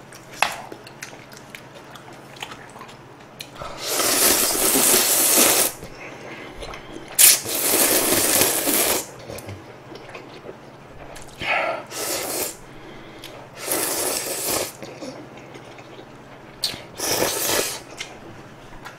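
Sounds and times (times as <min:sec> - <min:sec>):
person slurping noodles: 0:03.6 - 0:05.8, 0:07.2 - 0:09.1, 0:11.8 - 0:12.6, 0:13.6 - 0:15.2, 0:16.7 - 0:17.9.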